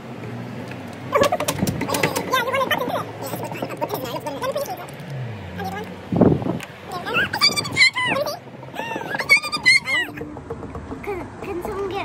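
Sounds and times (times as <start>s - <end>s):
child squealing: 7.0s - 10.2s.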